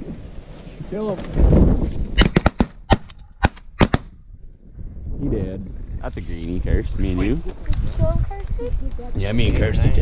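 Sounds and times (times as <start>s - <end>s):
shotgun shots: 2.2s - 4.1s.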